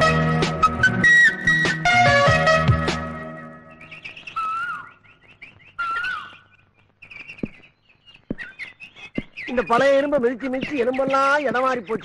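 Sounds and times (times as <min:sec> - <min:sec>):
birds chirping: 0:00.6 - 0:12.0
bird whistled calls: 0:03.7 - 0:12.0.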